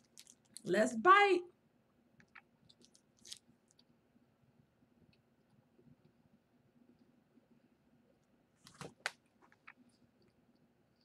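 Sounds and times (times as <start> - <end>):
teeth crunching candy bar: 0.0 - 0.7, 2.2 - 3.9.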